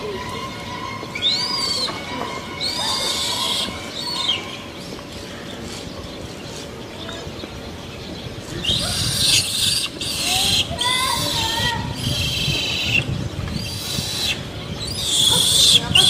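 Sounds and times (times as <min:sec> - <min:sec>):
infant monkey screaming: 0:00.0 - 0:04.6, 0:08.6 - 0:16.0.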